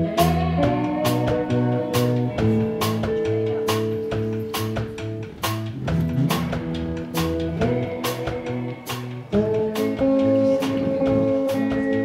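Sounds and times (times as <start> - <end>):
electric blues band playing: 0.0 - 12.0.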